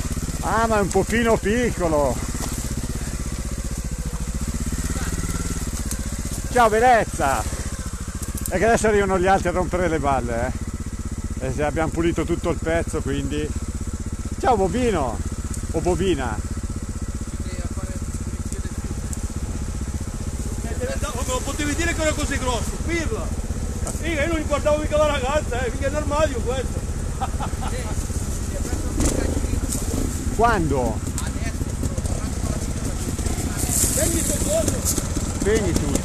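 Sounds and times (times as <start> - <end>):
motorcycle engine at low revs: 0.0 - 36.0.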